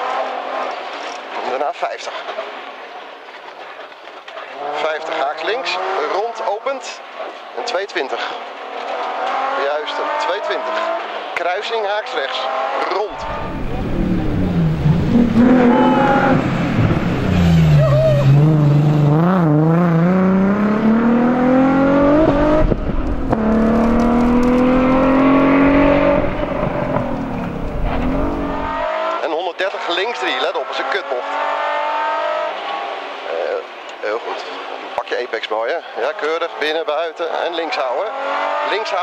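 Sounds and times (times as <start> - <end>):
rally car engine revving: 0.0 - 1.5, 4.4 - 6.6, 8.2 - 11.4, 12.0 - 33.7, 37.2 - 39.0
car engine inside cabin: 13.1 - 29.1.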